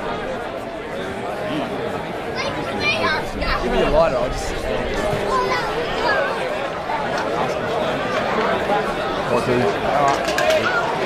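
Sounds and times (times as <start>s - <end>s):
people shouting and calling: 2.2s - 11.0s.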